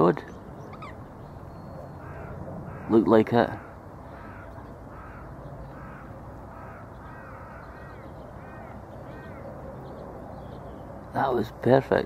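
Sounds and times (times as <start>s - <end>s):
distant bird calling: 0.0s - 12.0s.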